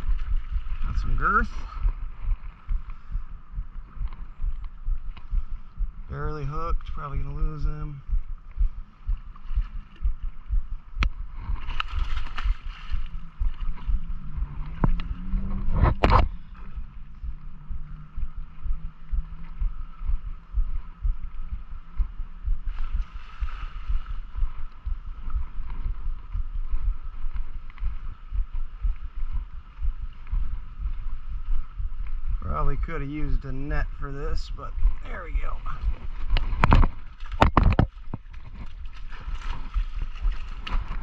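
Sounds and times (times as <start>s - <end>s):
thumps on microphone: 14.7s - 16.4s, 35.7s - 38.8s.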